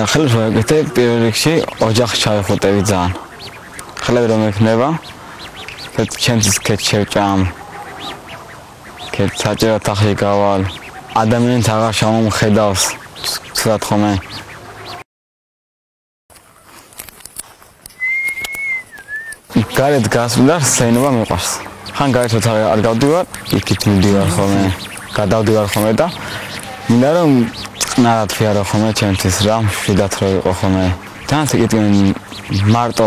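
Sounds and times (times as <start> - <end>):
man speaking: 0.0 - 3.2, 4.0 - 5.0, 9.1 - 14.2, 19.5 - 33.0
person whistling: 18.0 - 19.4.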